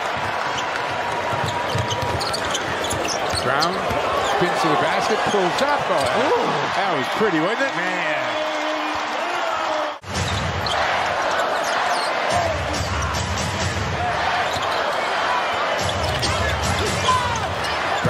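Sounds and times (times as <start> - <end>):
arena crowd noise: 0.0 - 18.0.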